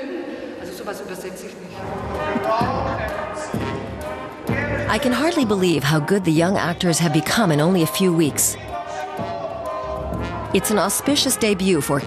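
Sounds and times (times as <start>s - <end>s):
performer's voice on stage: 4.5s - 8.8s.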